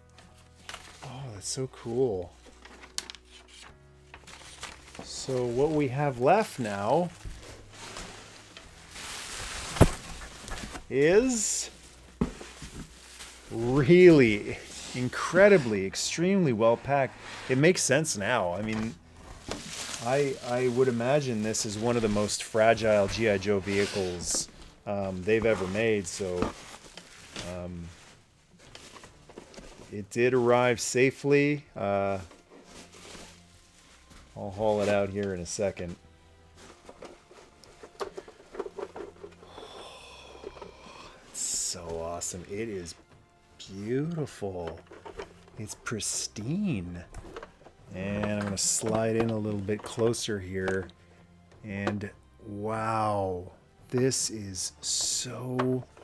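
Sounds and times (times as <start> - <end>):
bubble wrap rustling: 0.0 - 50.9
faint music: 0.0 - 56.0.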